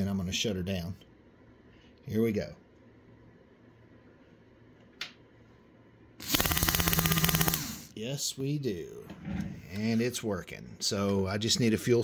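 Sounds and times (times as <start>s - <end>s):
fuel pump buzzing rattle: 6.2s - 7.8s.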